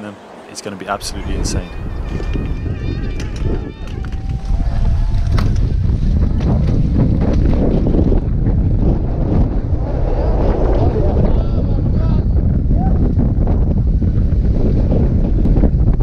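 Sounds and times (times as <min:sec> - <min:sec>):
wind rumble on microphone: 0:00.9 - 0:16.0.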